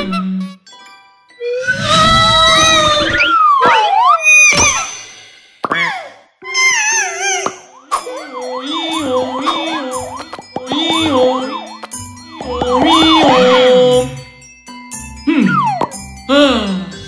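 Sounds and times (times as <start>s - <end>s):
cartoon wobbling falling tone: 7.2s - 14.2s, 15.3s - 16.0s
siren-like wail: 7.5s - 14.3s.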